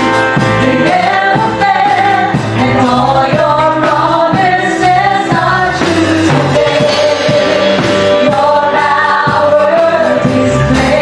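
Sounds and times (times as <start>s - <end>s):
live worship band playing: 0.0s - 11.0s
backing singers: 0.2s - 11.0s
woman singing lead: 0.4s - 11.0s.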